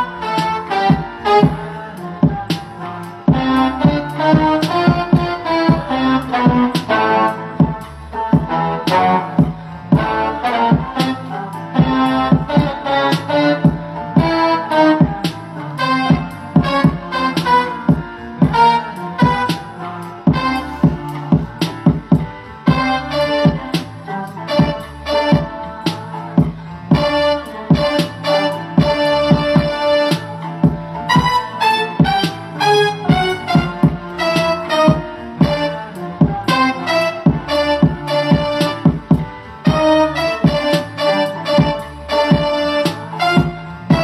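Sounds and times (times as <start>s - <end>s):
percussive beat with keyboard notes: 0.0s - 44.0s.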